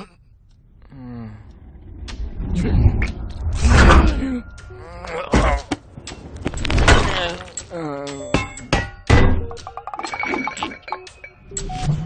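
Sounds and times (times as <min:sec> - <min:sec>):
drawn-out wordless vocal sounds: 0:00.0 - 0:05.8.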